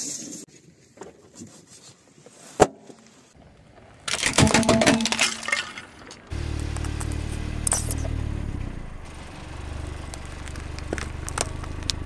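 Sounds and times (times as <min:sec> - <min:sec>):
car engine running: 0:06.3 - 0:12.0
plastic cracking: 0:09.8 - 0:12.0.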